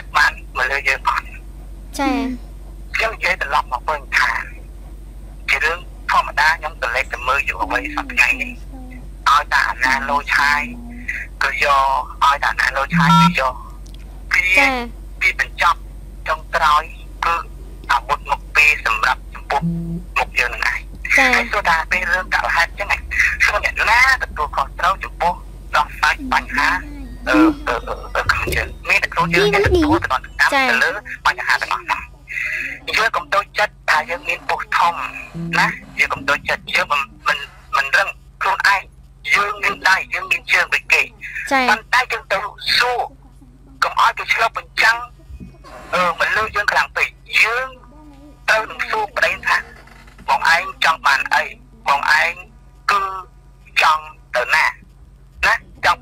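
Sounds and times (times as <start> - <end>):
person talking: 2.0 - 2.4, 5.5 - 13.7, 14.3 - 53.0
woman talking: 2.0 - 2.4, 7.6 - 9.1, 9.9 - 11.1, 14.6 - 14.9, 21.2 - 21.5, 26.0 - 33.0, 34.1 - 36.9, 41.4 - 41.8, 43.0 - 43.8, 47.8 - 49.8.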